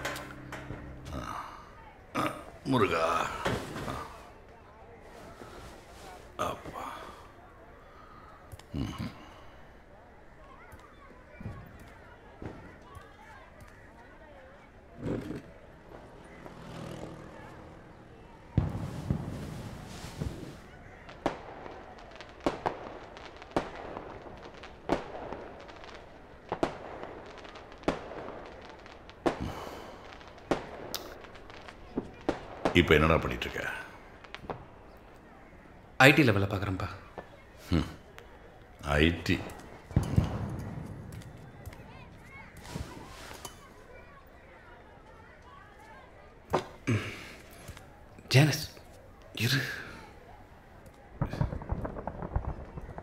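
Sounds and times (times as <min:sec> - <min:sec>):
sharp echoing bangs: 0:00.0 - 0:01.7, 0:39.2 - 0:43.1, 0:51.2 - 0:53.0.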